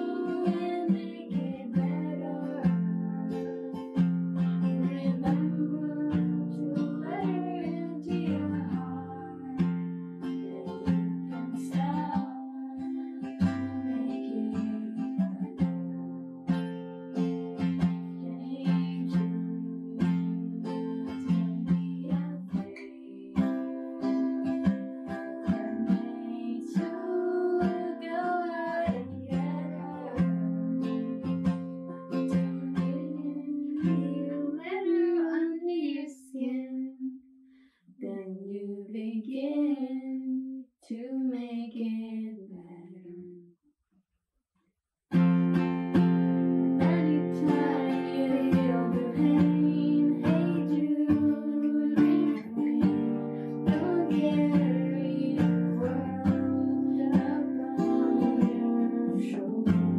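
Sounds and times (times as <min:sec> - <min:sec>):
acoustic guitar strumming: 0:00.0 - 0:35.1, 0:45.1 - 0:59.9
woman singing: 0:00.0 - 0:37.2, 0:38.0 - 0:43.4, 0:46.6 - 0:59.9.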